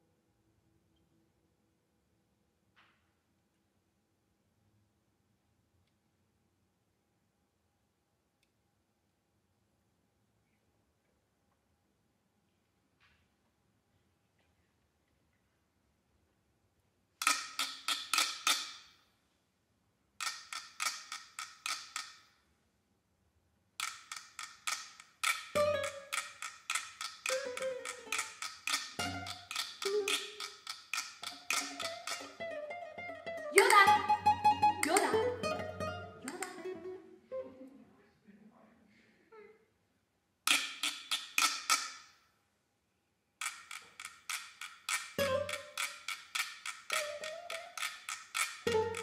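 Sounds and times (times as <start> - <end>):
percussion struck with sticks: 17.2 - 18.9, 20.2 - 22.2, 23.8 - 32.5, 33.6 - 36.7, 40.5 - 42.1, 43.4 - 49.0.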